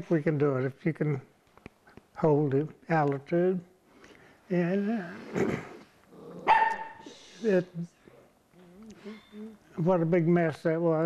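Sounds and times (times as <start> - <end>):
dog barking: 6.4 - 7.0.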